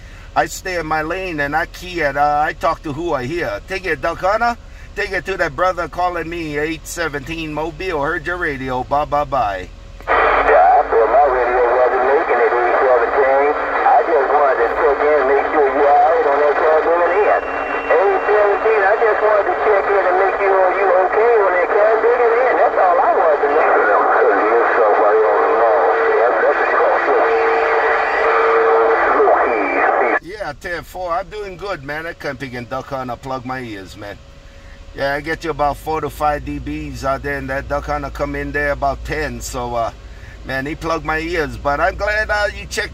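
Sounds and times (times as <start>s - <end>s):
voice over radio speaker: 0.4s - 34.1s, 35.0s - 42.9s
steady whistle: 17.2s - 18.6s.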